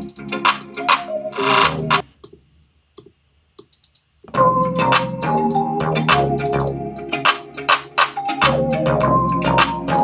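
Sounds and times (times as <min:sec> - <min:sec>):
trap beat with keyboard and bass: 0:00.0 - 0:02.0, 0:03.6 - 0:10.0
hi-hat ticks: 0:03.0 - 0:08.6.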